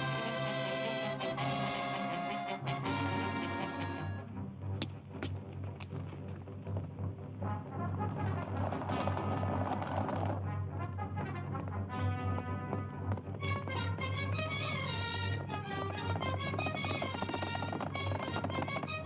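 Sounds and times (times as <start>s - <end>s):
orchestral music led by brass: 0.0s - 5.1s, 7.1s - 17.7s.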